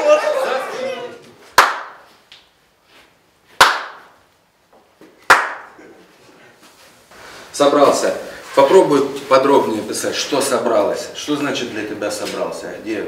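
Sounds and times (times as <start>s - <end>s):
sharp hand claps: 1.5s - 2.5s, 3.6s - 4.2s, 5.0s - 5.8s.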